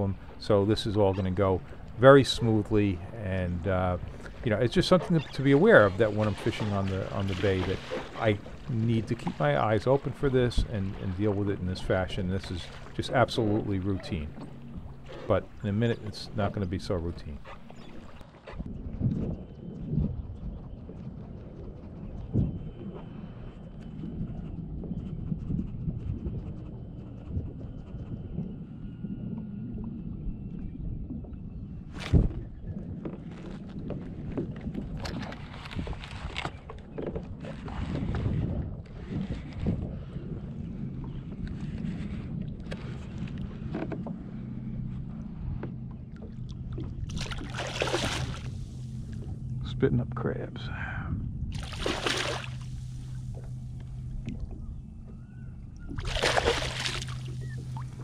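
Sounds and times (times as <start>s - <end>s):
water sloshing against kayak hull: 0.0s - 25.9s, 26.6s - 50.2s, 51.1s - 58.0s
low hum: 0.0s - 58.0s
fish splashing at surface: 47.1s - 48.5s, 51.6s - 52.8s, 56.0s - 57.8s.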